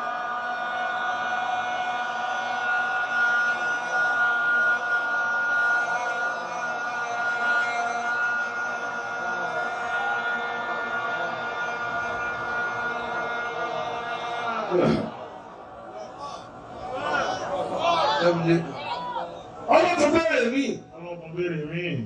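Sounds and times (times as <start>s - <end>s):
faint voices: 0.0s - 21.8s
high-pitched feedback tone: 2.5s - 15.4s.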